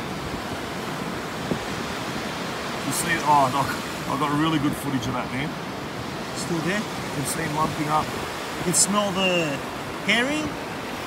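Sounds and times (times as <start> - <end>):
surf washing on beach: 0.0 - 11.0.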